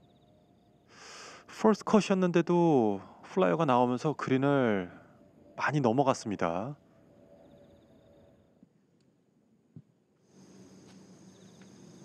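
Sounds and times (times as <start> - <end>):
rapid insect chirping: 0.0 - 8.8, 10.2 - 12.0
faint outdoor ambience: 0.0 - 12.0.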